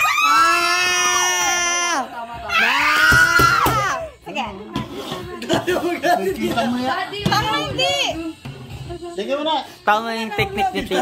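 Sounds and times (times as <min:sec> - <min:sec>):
long high scream: 0:00.0 - 0:02.0.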